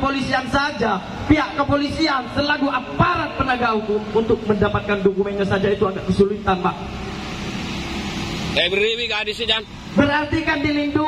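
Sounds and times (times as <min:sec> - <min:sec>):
man's voice: 0:00.0 - 0:06.8, 0:08.6 - 0:11.0.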